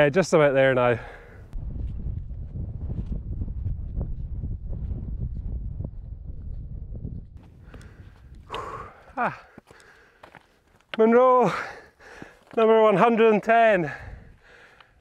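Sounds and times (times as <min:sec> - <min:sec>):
wind buffeting microphone: 0:01.4 - 0:09.1, 0:14.0 - 0:14.7
faint footsteps: 0:01.7 - 0:11.1, 0:12.0 - 0:12.8
man calling out: 0:09.2 - 0:09.5, 0:11.0 - 0:11.8.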